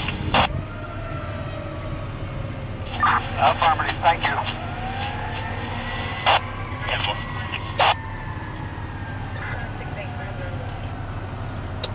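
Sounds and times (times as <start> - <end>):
steady low hum: 0.0 - 11.9
mechanical siren winding down: 4.5 - 11.9.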